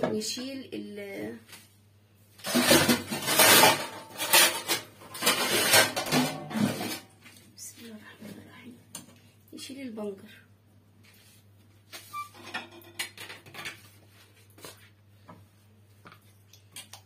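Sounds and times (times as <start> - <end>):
kitchenware clattering and scraping: 2.4 - 7.2, 12.1 - 14.0.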